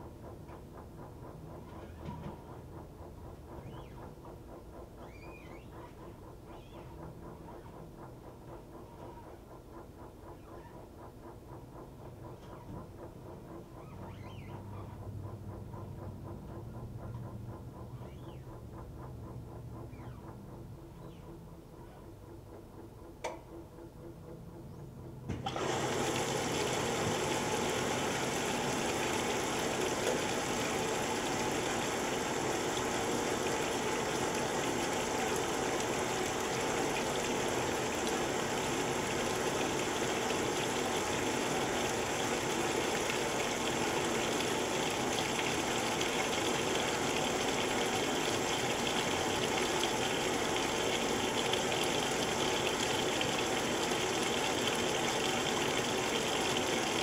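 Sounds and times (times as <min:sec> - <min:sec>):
washer filling with water: 0:00.0 - 0:57.0.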